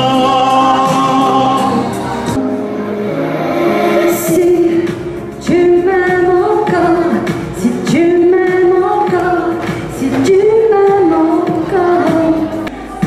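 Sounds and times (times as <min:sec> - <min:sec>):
woman singing into microphone: 0:00.0 - 0:13.0.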